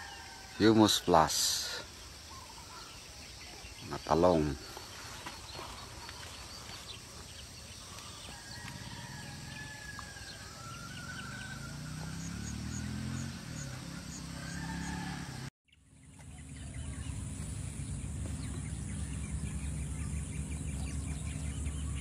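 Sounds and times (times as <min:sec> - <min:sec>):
distant roosters crowing: 0:00.0 - 0:15.5.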